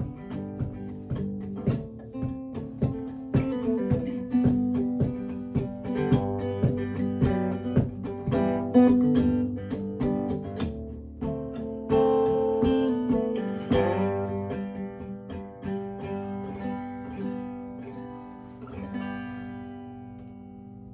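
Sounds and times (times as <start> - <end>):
acoustic guitar picking and strumming: 0.0 - 20.9.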